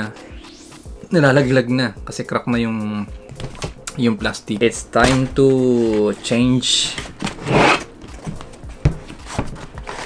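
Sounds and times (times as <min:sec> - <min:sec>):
cardboard sliding and rubbing: 0:05.6 - 0:07.9, 0:09.0 - 0:10.0.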